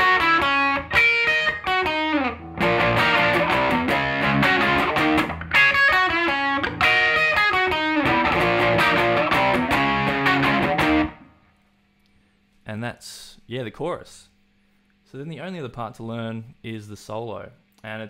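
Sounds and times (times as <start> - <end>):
electric guitar riff: 0.0 - 11.4.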